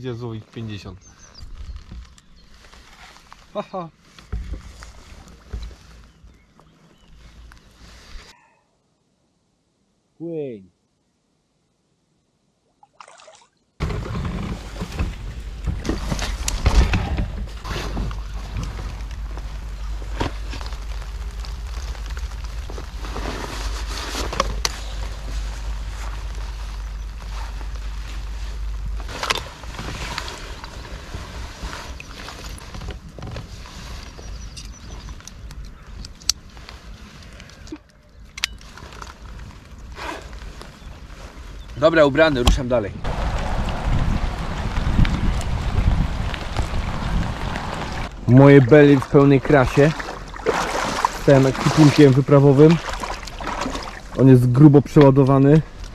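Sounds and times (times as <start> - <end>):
river water sloshing: 12.7 - 34.2, 43.1 - 54.5
clothing rustling: 13.8 - 34.4
wind rumbling on microphone: 13.8 - 55.9.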